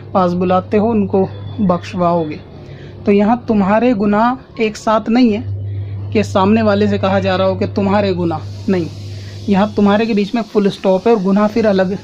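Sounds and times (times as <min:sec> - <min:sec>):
person speaking: 0:00.0 - 0:12.0
steady low hum: 0:00.0 - 0:12.0.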